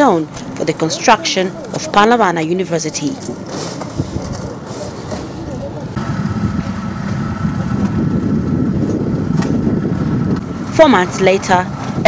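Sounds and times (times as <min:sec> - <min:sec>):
crowd chatter: 0:00.0 - 0:06.0.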